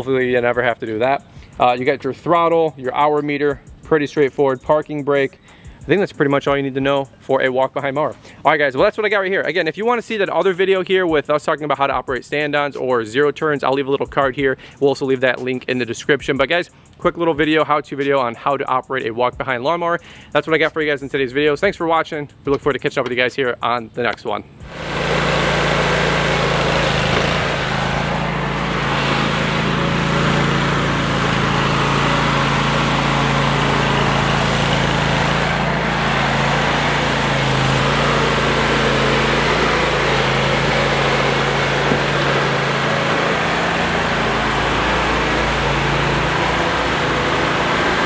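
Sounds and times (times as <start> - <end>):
lawn mower engine running: 24.6 - 48.0.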